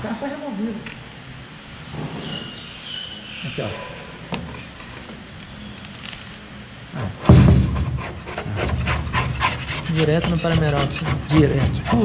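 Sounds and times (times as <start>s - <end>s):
metal scraper scraping paint: 8.4s - 12.0s.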